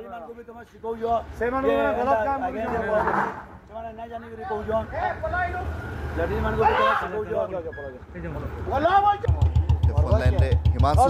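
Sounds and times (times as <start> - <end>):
men talking: 0.0 - 11.0
motorbike engine idling: 8.7 - 11.0.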